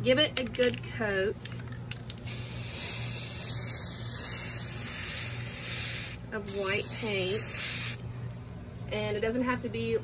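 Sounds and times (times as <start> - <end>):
spray paint can hissing: 2.2 - 8.0.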